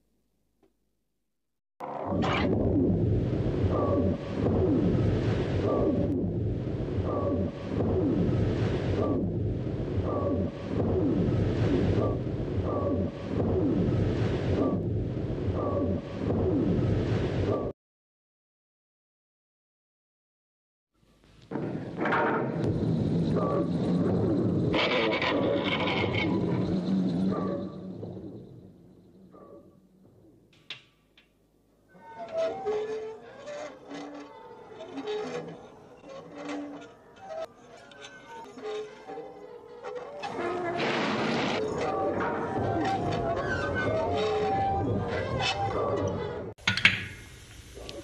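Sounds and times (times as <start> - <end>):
steady hum: 2.5 - 17.4.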